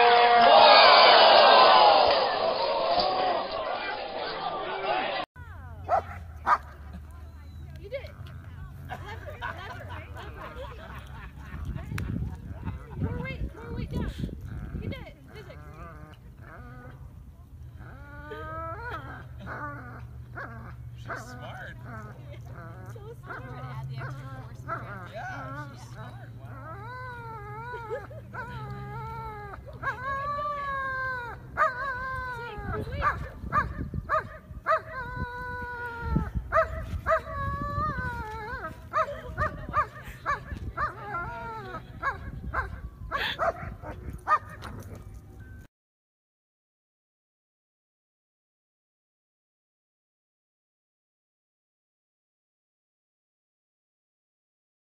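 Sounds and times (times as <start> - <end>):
dog whining and yelping: 17.8 - 45.2.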